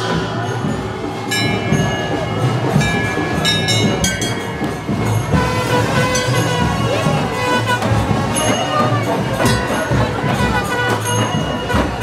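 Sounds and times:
brass temple bells clanging: 0:00.0 - 0:12.0.

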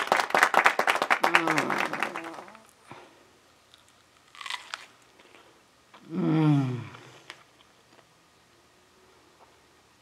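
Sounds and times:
strawberry bitten crunchy: 0:03.6 - 0:08.1.

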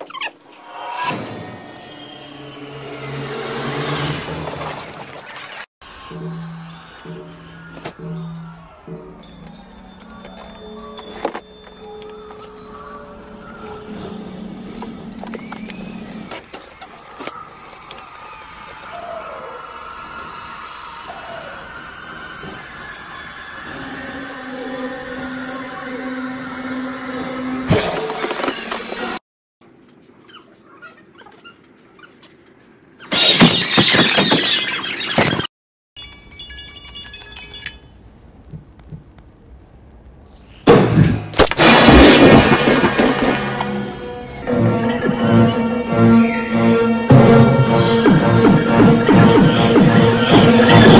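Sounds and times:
eerie sustained tones: 0:00.5 - 0:04.4, 0:05.8 - 0:16.3, 0:18.9 - 0:27.7, 0:41.7 - 0:50.9
loud jump-scare blasts: 0:40.7 - 0:50.9.

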